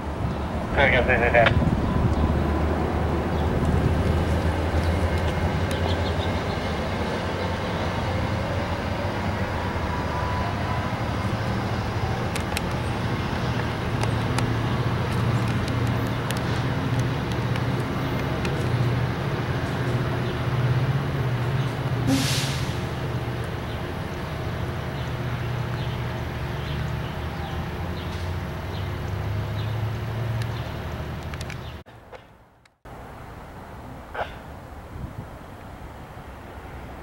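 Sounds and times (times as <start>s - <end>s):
train wheels rumbling on rail: 0.0s - 31.7s
locomotive engine hum: 0.0s - 37.0s.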